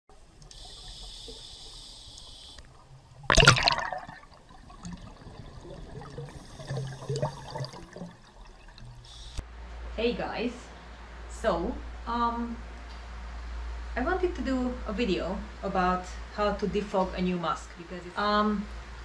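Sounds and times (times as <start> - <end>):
water gurgles: 0.1 - 9.4
water hissing: 0.2 - 9.4
water gushing: 2.5 - 9.4.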